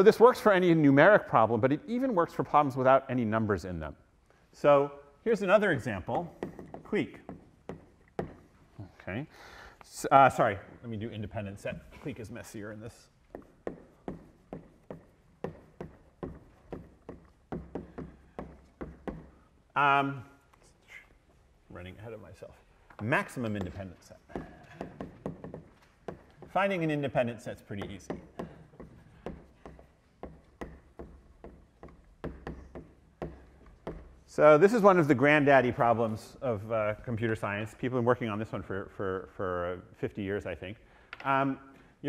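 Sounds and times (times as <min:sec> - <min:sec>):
chalk tapping on blackboard: 0:06.0 - 0:08.8, 0:11.6 - 0:19.5, 0:22.8 - 0:34.3
chalk scraping on blackboard: 0:12.1 - 0:19.2.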